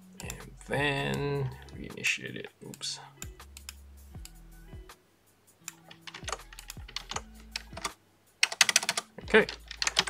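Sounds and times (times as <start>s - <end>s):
typing on computer keyboard: 5.8s - 10.0s.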